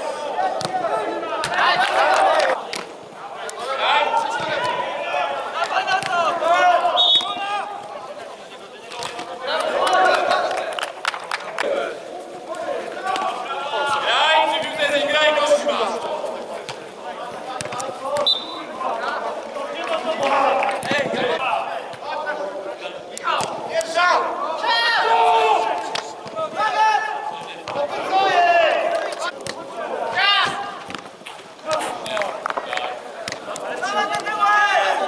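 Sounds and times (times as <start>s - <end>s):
players shouting: 0.0s - 35.0s.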